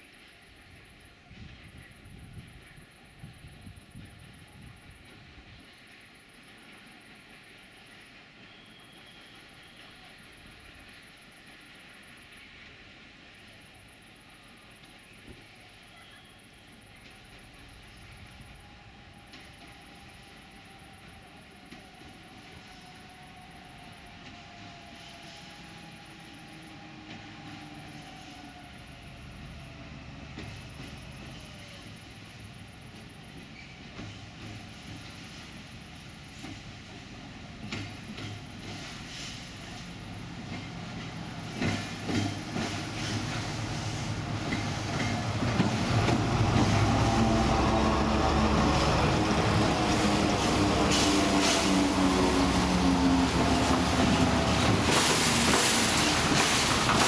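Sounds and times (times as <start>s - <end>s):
diesel locomotive passing: 0.0s - 57.0s
wheels clicking over rail joints: 53.5s - 57.0s.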